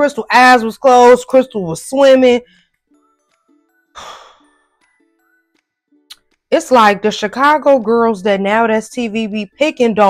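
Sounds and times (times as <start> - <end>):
soft background music: 0.0 - 10.0
person sighing: 4.0 - 4.6.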